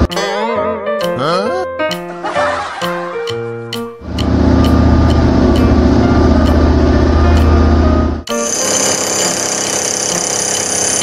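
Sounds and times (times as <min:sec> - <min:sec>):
background music with steady beat: 0:00.0 - 0:08.4
hydraulic breaker hammering rock: 0:08.3 - 0:11.0.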